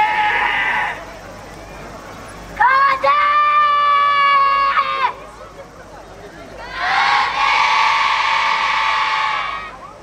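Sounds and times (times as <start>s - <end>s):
group of young voices shouting: 2.6s - 5.2s, 6.6s - 9.8s.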